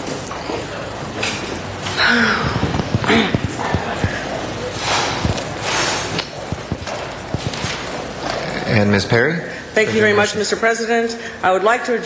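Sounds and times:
people shuffling: 0:00.0 - 0:08.8
murmur of movement: 0:00.0 - 0:12.0.

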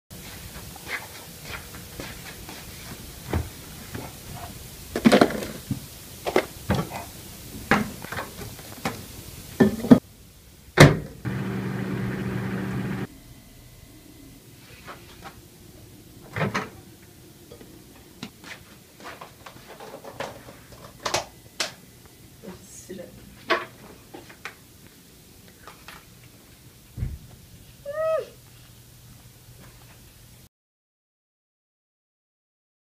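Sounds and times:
microwave oven humming: 0:10.9 - 0:14.4.

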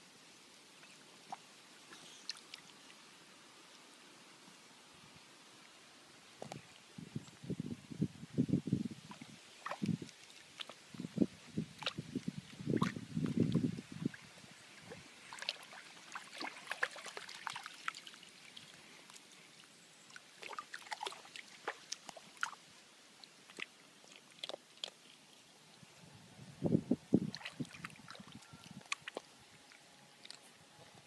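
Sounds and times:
stream trickling: 0:00.3 - 0:31.0
dog splashing in water: 0:15.3 - 0:18.1.

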